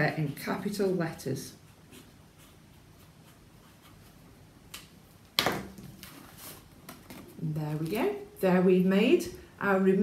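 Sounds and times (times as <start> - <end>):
marker writing on paper: 1.6 - 4.2.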